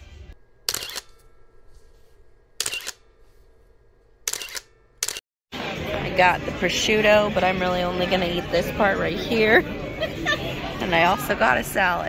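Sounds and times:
camera shutter clicks: 0:00.7 - 0:01.1, 0:02.6 - 0:03.0, 0:04.3 - 0:05.2.

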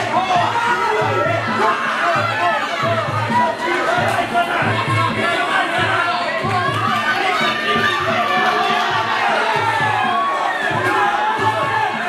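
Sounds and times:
background music: 0:00.0 - 0:12.0
spectators shouting and cheering: 0:00.0 - 0:12.0.

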